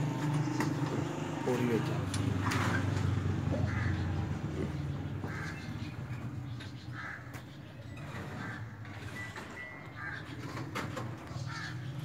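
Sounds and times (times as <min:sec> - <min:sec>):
bird calling: 0:02.8 - 0:12.0.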